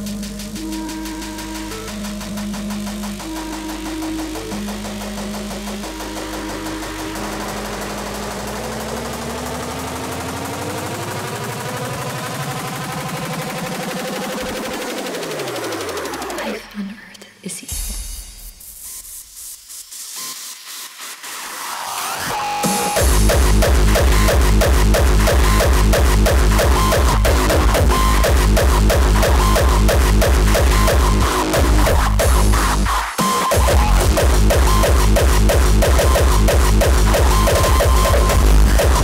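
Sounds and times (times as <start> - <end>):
synth pitch sweeps: 0.0 - 16.6, 22.3 - 39.0
distorted drum and bass music: 0.0 - 39.0.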